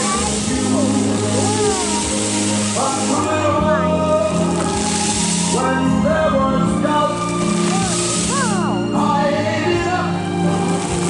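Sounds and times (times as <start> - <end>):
fountain water jets hissing: 0.0 - 11.0.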